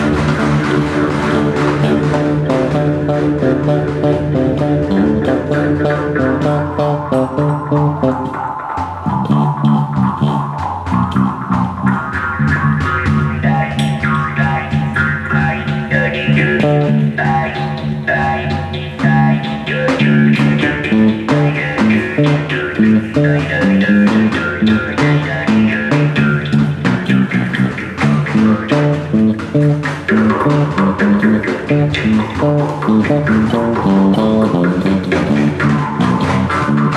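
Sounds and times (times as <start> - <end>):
frame drum beating: 0.0 - 18.1, 18.7 - 36.9
electric bass guitar: 0.0 - 36.9
jaw harp buzzing drone: 0.0 - 36.9.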